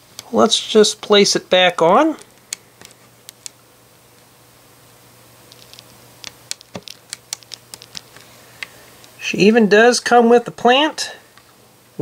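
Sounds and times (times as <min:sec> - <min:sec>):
plastic pieces clicking on table: 0:05.5 - 0:08.2.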